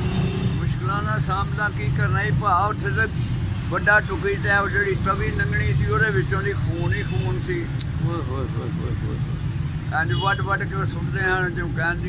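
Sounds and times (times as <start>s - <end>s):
elderly man speaking: 0.6s - 12.0s.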